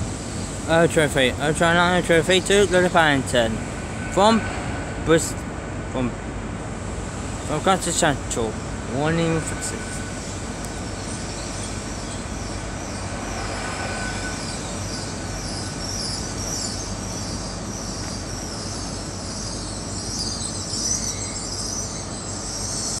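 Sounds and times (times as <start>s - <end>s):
train rolling rumble: 0.0s - 20.1s
high-pitched wheel squeal: 1.5s - 5.6s, 7.2s - 17.9s.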